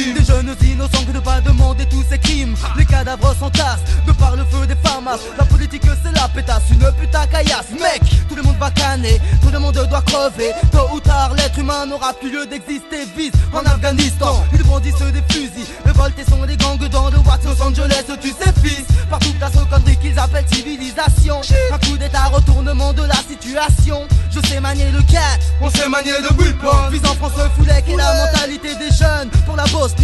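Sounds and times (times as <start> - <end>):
heavy pulsing bass line: 0.0 - 12.0, 13.4 - 30.0
rapping over a beat: 0.0 - 30.0.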